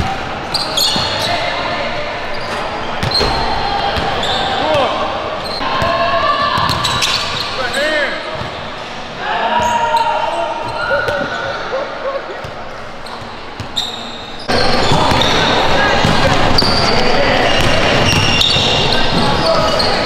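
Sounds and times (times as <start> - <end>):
players calling out: 0.0 - 20.0
sneakers squeaking: 0.0 - 20.0.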